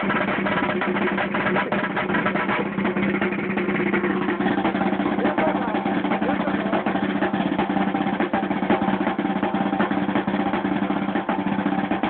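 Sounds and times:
snare drum rolls: 0:00.0 - 0:12.0.

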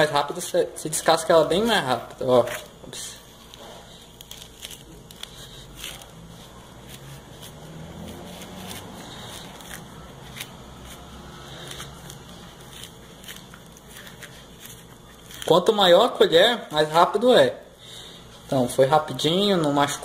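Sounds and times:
spoon peeling orange rind: 0:00.4 - 0:16.9.

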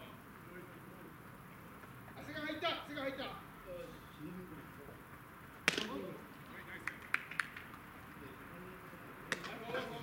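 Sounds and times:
baseball bat crack: 0:05.6 - 0:06.0, 0:09.3 - 0:09.6.

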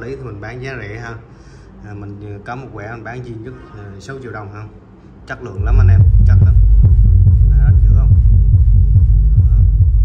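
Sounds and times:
deep bass thumps from subwoofer: 0:05.6 - 0:10.0.

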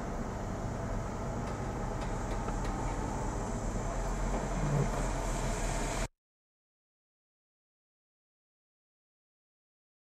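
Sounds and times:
heavy diesel machinery running: 0:00.0 - 0:06.1.

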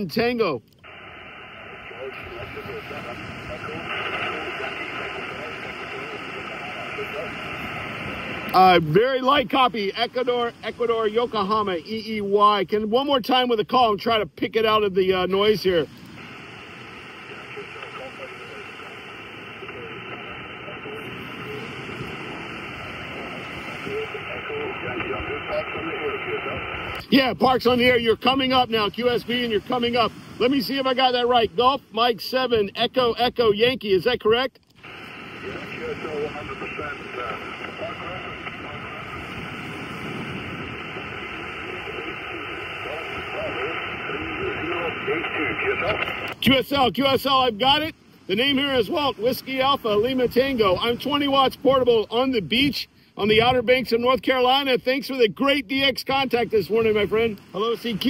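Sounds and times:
radio band noise hiss: 0:00.0 - 0:58.0
weak distant radio voice: 0:00.9 - 0:12.2, 0:15.5 - 0:31.6, 0:34.9 - 0:39.7, 0:40.5 - 0:46.4.

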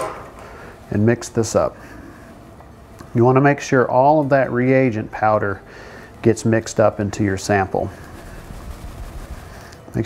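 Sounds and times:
low room hum: 0:00.0 - 0:10.0
plastic test tube being shaken: 0:07.4 - 0:10.0.

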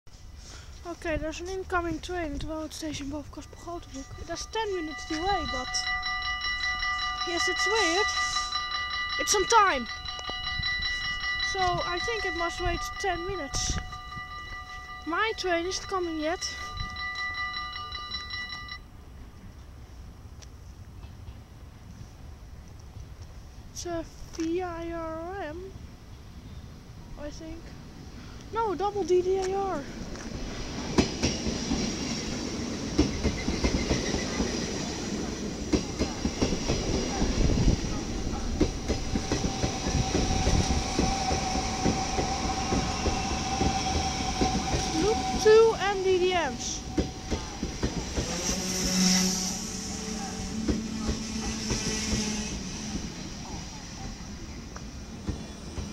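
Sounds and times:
steady high tone: 0:01.0 - 0:19.1, 0:33.7 - 0:55.9
rapidly pulsing ringing signal: 0:03.3 - 0:18.9
train wheels clattering over joints: 0:30.0 - 0:54.4.

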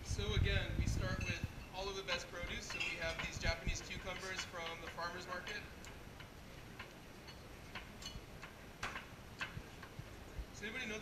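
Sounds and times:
glassware and bar tools clicking: 0:02.1 - 0:09.9.

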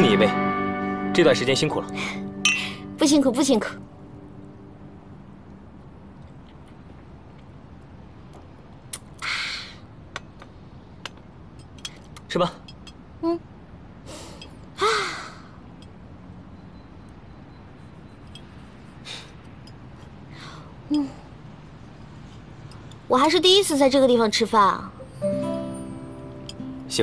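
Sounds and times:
wine glasses clinking: 0:02.4 - 0:02.9.

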